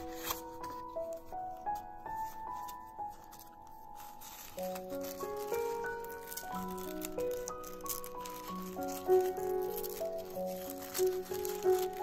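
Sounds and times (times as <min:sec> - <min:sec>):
paper rustling: 0:00.0 - 0:12.0
soft background music: 0:00.0 - 0:12.0.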